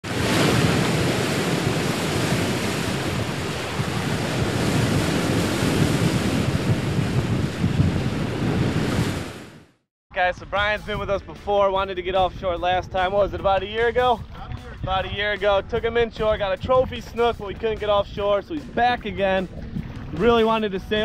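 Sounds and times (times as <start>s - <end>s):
ocean waves rushing: 0.0s - 9.7s.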